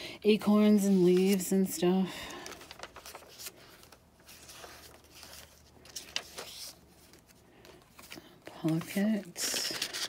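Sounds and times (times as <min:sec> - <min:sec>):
paper pages turning: 0:00.6 - 0:01.7, 0:02.3 - 0:10.0.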